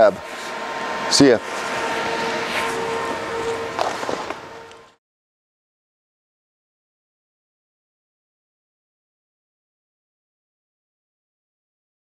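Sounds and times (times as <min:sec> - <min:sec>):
constant workshop hum: 0:00.0 - 0:05.0.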